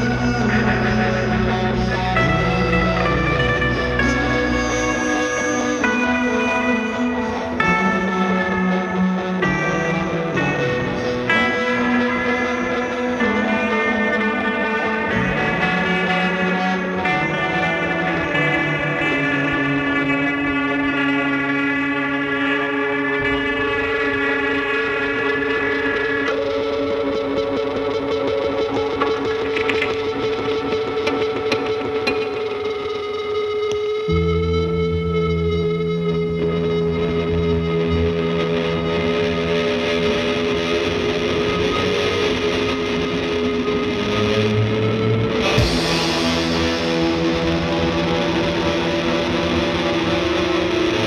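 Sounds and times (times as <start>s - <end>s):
rock band distorted chord: 0.0s - 51.0s.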